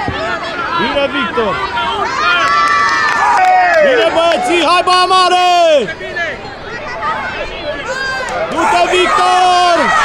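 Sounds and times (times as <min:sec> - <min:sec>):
spectators cheering and shouting: 0:00.0 - 0:10.0.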